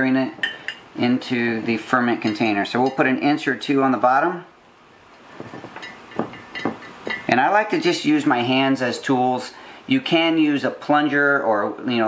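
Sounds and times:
light knocks against glass jar: 6.1 - 7.2.

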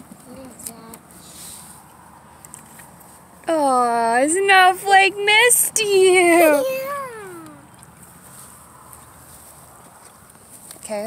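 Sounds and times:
faint outdoor background: 0.0 - 11.0
human voice sliding down: 6.6 - 7.6.

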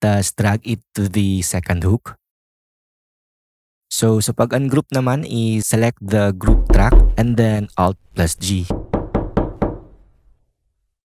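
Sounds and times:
sharp ringing knocks: 6.5 - 7.4.

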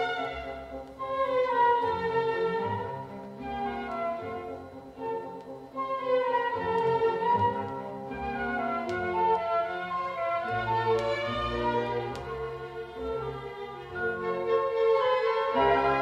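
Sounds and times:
classical music over loudspeakers: 0.0 - 16.0.

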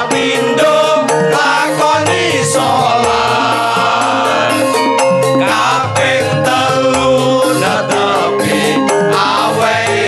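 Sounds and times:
men singing devotional song: 0.0 - 10.0
musical accompaniment: 0.0 - 10.0.

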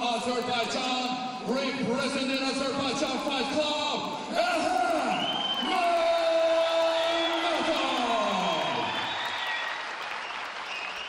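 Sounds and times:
ring announcer drawn-out shout: 3.4 - 8.9
crowd cheering: 4.2 - 11.0.

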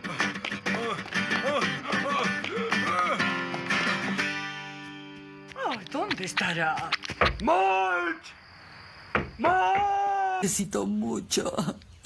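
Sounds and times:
soundtrack music with guitar: 0.0 - 7.2.

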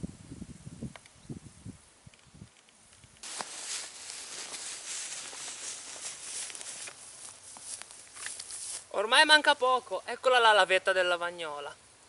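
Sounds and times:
footsteps in dry grass: 3.2 - 9.3.

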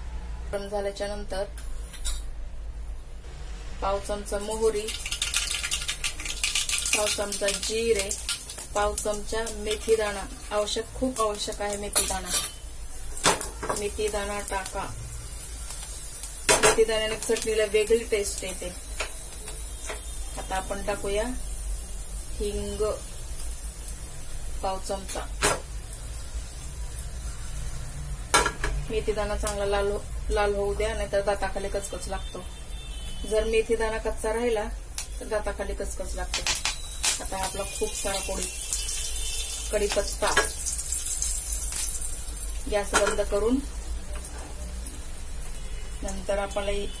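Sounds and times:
seeds crackling in hot oil: 4.1 - 47.0.

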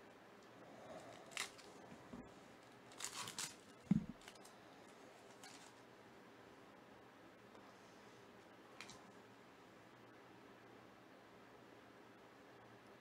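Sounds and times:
faint rustle of cards: 0.8 - 5.9
foil pack tearing and crinkling: 1.1 - 1.8, 2.9 - 4.5
dull thump: 3.9 - 4.2.

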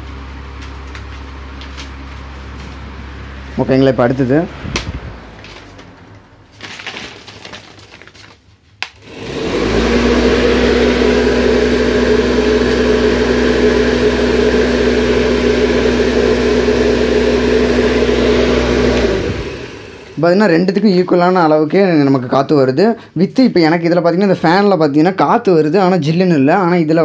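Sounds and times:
electric fan running: 0.0 - 25.0
fan switch click: 4.7 - 5.0.

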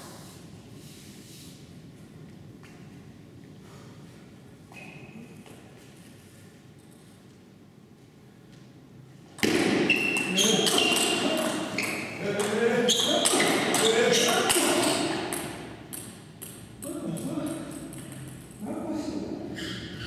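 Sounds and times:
person speaking: 10.3 - 15.4, 16.8 - 19.6.

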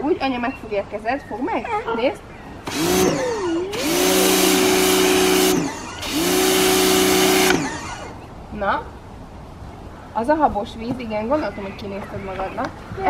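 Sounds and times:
pressure washer motor humming: 2.6 - 8.3
water jet hissing: 2.7 - 8.2.

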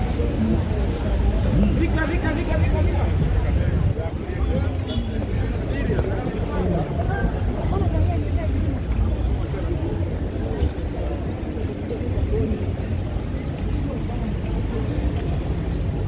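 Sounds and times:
chatter of passers-by: 0.0 - 16.0
low rumble of traffic: 0.0 - 16.0.

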